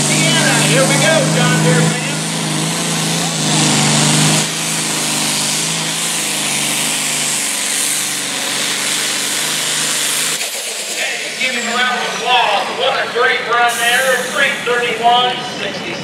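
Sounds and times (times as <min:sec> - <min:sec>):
loud hissing rush: 0:00.0 - 0:15.7
tractor diesel engine revving: 0:00.0 - 0:16.0.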